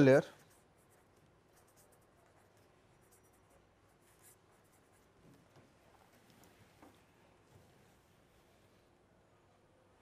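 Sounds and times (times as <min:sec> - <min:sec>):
pen scratching on paper: 0:00.0 - 0:06.6.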